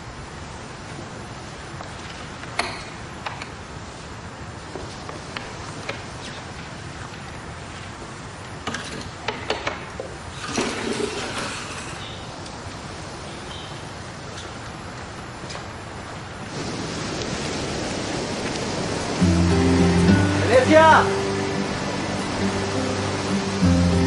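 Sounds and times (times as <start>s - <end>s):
steady background hiss: 0.0s - 24.0s.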